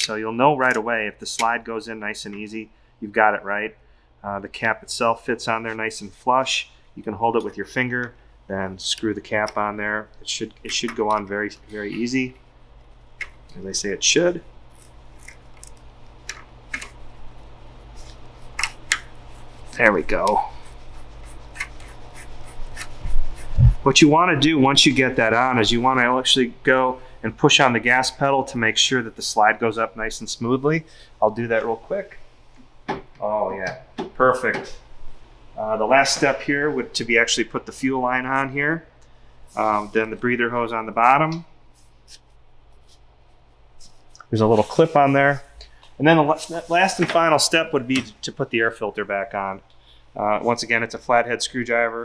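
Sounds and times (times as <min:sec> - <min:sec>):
low steady hum: 0:00.0 - 0:52.0.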